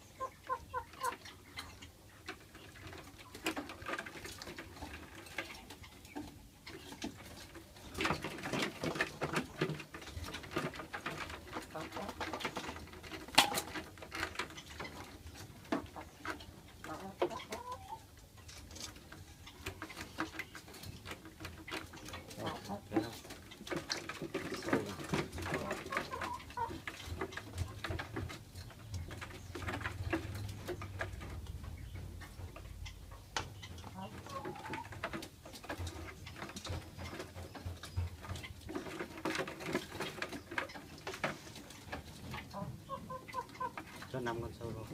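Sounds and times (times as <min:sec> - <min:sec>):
bird calls: 0:00.0 - 0:02.8.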